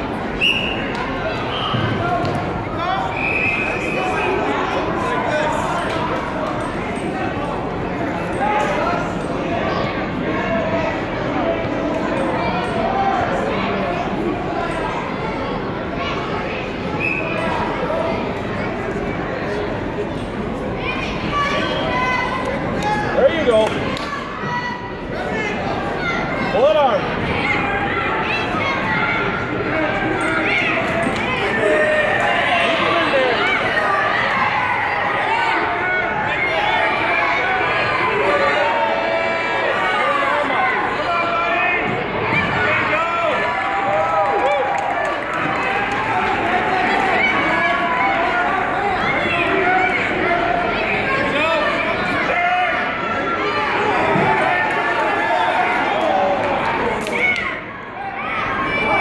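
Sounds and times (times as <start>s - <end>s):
spectators talking and calling out: 0.0s - 59.0s.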